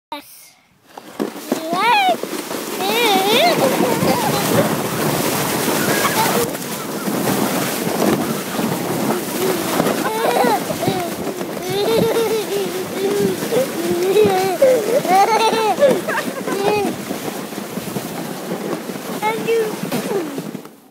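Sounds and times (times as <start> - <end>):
sled sliding on snow: 0.8 - 20.9
wind on microphone: 1.7 - 20.9.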